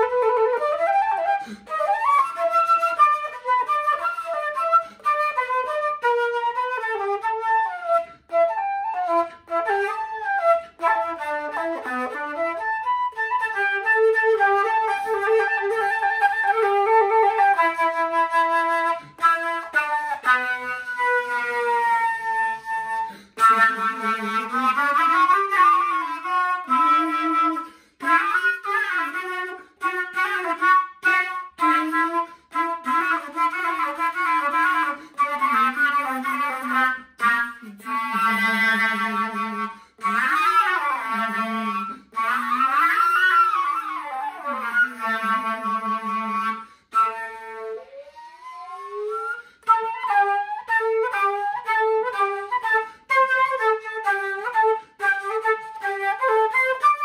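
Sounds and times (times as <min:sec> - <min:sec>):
solo flute playing blues: 0:00.0 - 0:57.0.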